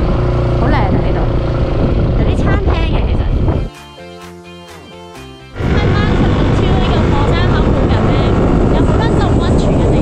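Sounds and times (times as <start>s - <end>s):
motorbike engine and road noise: 0.0s - 3.7s, 5.6s - 10.0s
wind buffeting microphone: 0.0s - 3.7s, 5.6s - 10.0s
woman's voice: 2.2s - 3.6s, 5.6s - 10.0s.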